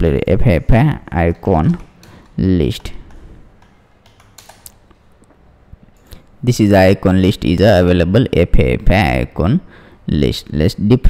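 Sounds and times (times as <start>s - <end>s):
computer keyboard keystrokes: 1.7s - 5.0s.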